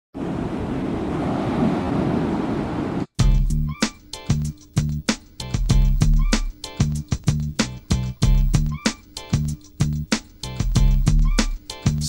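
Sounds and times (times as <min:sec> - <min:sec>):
ocean surf rushing: 0:00.2 - 0:03.1
hip-hop beat with heavy bass: 0:03.2 - 0:12.0.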